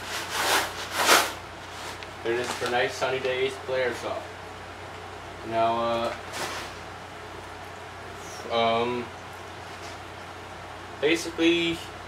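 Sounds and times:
plastic bag rustling: 0:00.0 - 0:03.2, 0:06.0 - 0:06.9.

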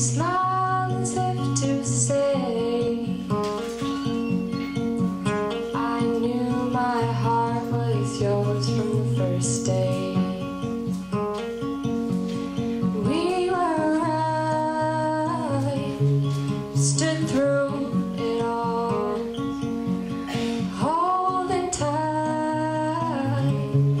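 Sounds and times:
acoustic guitar playing: 0:00.0 - 0:24.0.

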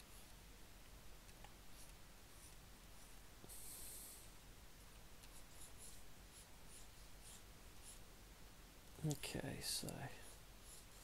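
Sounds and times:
stylus scratching on tablet: 0:05.3 - 0:08.0, 0:10.0 - 0:11.0.

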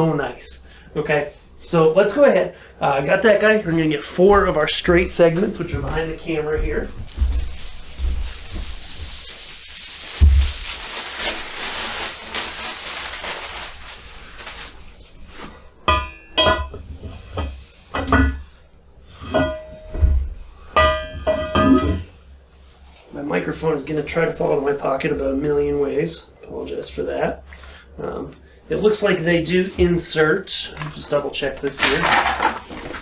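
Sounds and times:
rustling: 0:05.2 - 0:15.7.

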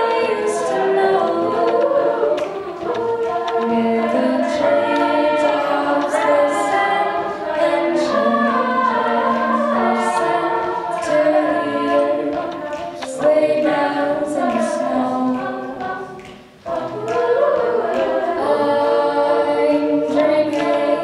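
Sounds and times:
a cappella group singing in harmony: 0:00.0 - 0:21.0.

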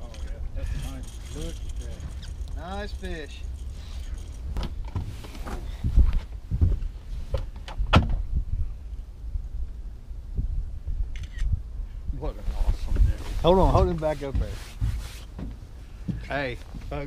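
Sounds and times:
wind rumble on microphone: 0:00.0 - 0:15.6.

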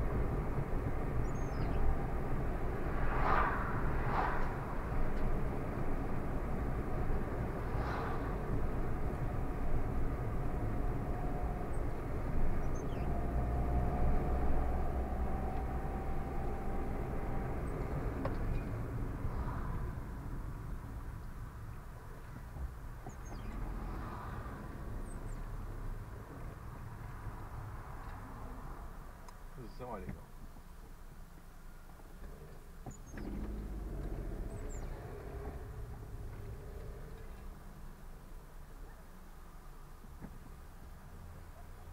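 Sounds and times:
car engine and tyre rumble: 0:00.0 - 0:41.9.

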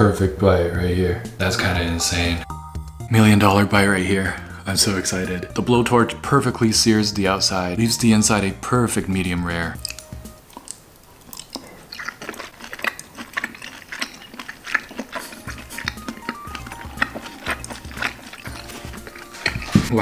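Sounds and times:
soft background music: 0:00.0 - 0:10.8, 0:14.7 - 0:20.0
chewing with wet mouth smacks: 0:09.8 - 0:19.9.

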